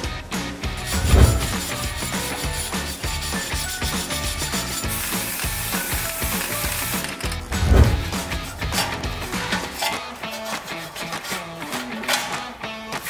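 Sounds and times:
background music: 0.0s - 13.0s
wire brush scrubbing steel: 0.6s - 13.0s.

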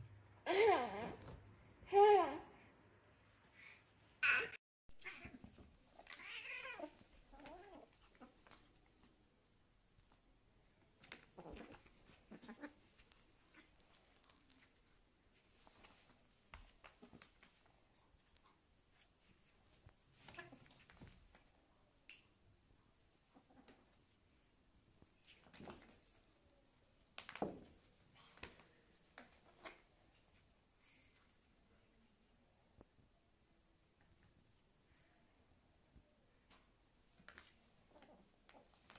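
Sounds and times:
kittens scuffling on carpet: 9.9s - 21.6s.

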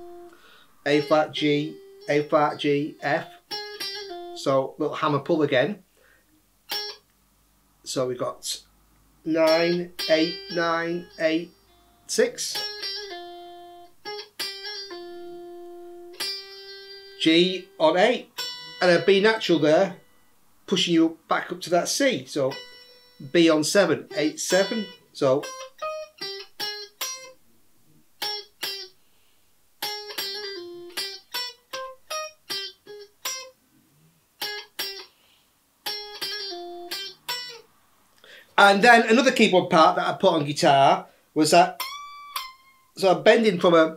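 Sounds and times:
clean electric guitar notes: 0.0s - 4.5s, 9.2s - 20.3s, 22.5s - 23.4s, 24.0s - 27.4s, 35.8s - 37.6s.

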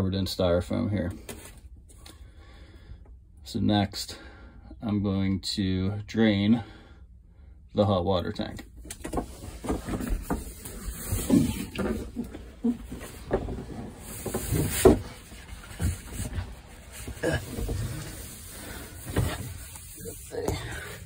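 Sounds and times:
phone handling bumps and rustling: 8.6s - 18.2s.

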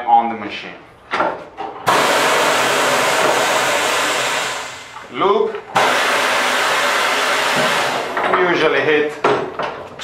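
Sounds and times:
compressed air hissing: 1.9s - 5.0s.

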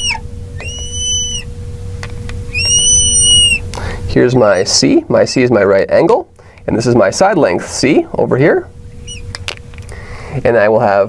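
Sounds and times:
marker squeaking on glass: 0.0s - 1.5s, 2.5s - 3.6s.

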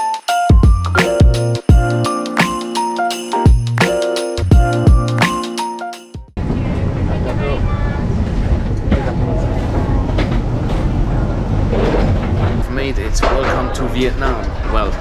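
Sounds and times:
airliner low rumble: 6.4s - 13.2s
passengers chattering: 6.4s - 15.0s.

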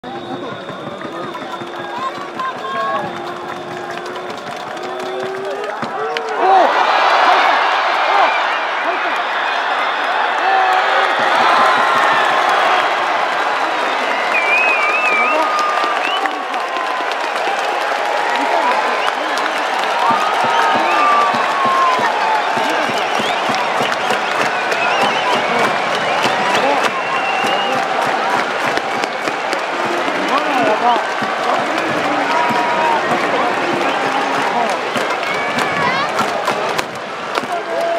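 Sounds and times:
clapping: 0.0s - 8.3s, 8.9s - 37.9s
crowd cheering and shouting: 0.0s - 37.9s.

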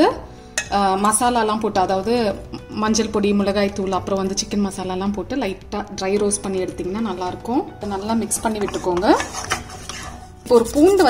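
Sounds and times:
wooden spatula scraping metal pan: 7.9s - 11.0s
person speaking: 10.5s - 11.0s.

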